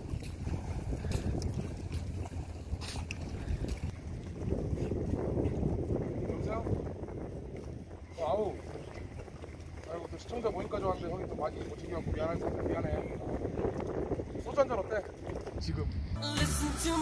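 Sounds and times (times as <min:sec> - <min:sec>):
wind buffeting microphone: 0:00.0 - 0:16.2.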